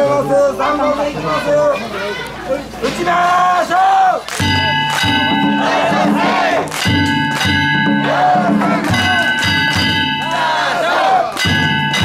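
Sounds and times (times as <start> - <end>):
crowd shouting: 0.0 - 12.0
metal gongs ringing: 4.4 - 12.0
taiko drum: 4.4 - 12.0.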